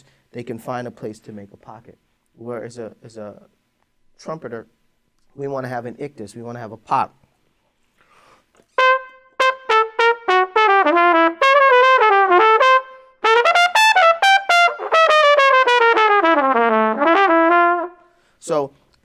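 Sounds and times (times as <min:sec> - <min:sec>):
solo jazz trumpet: 0:08.7 - 0:18.2.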